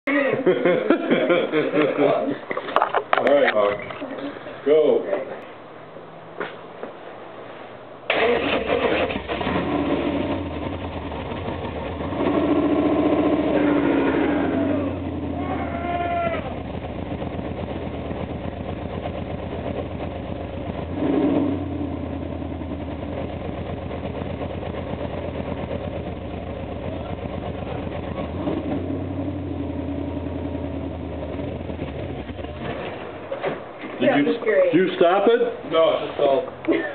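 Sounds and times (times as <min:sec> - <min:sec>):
car engine idling and revving: 0:08.4 - 0:33.4.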